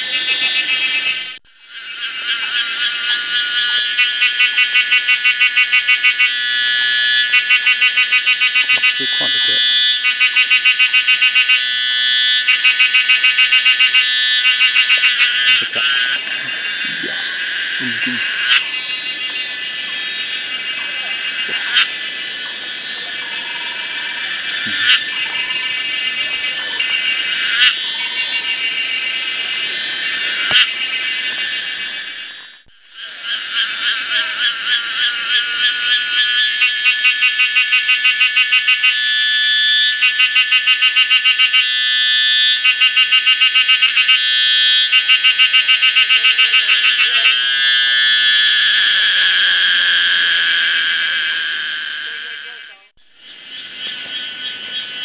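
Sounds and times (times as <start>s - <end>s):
cicadas buzzing: 0.0s - 55.0s.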